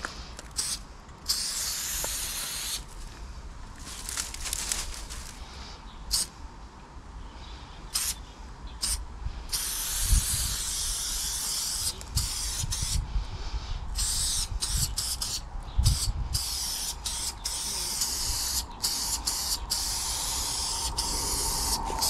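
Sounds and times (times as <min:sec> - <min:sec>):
spray-paint can hissing: 0:00.6 - 0:02.8, 0:08.0 - 0:08.2, 0:08.8 - 0:13.0, 0:14.0 - 0:22.0.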